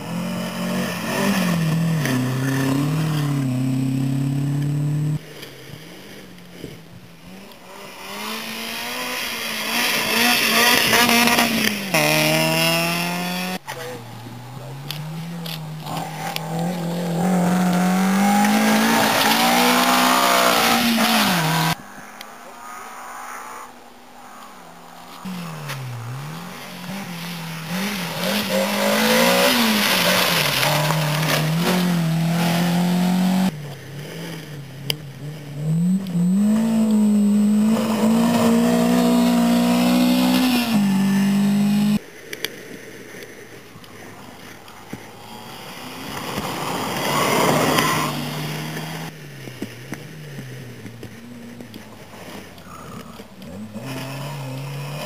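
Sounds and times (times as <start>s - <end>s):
rally car engine revving: 0.0s - 5.2s, 7.3s - 21.8s, 25.1s - 42.0s, 45.3s - 55.0s.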